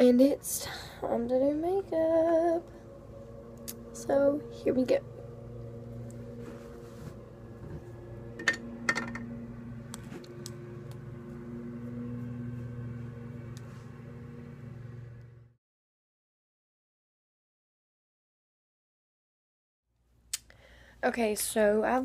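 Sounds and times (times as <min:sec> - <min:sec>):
faint electrical hum: 0:00.0 - 0:15.6, 0:20.0 - 0:22.0.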